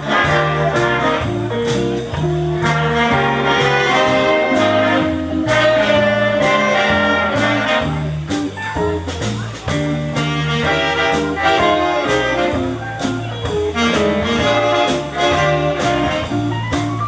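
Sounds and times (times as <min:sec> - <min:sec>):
electric guitar: 0:00.0 - 0:17.0
keyboard: 0:00.0 - 0:17.0
saxophones and brass chords: 0:00.0 - 0:17.0
upright double bass: 0:00.0 - 0:17.0.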